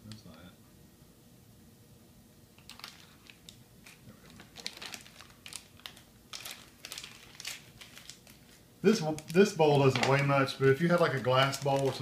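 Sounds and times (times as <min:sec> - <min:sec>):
plastic candy bag crinkling: 0:02.6 - 0:12.0.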